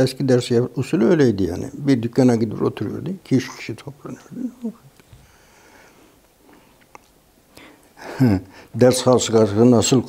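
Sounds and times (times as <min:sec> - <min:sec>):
faint breath through nose: 0:05.1 - 0:06.8.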